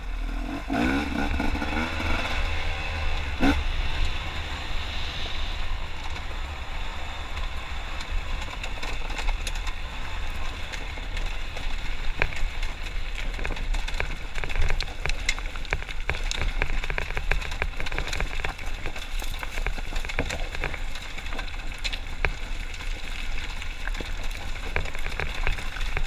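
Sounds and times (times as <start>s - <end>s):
dirt bike engine rumble: 0.0s - 26.0s.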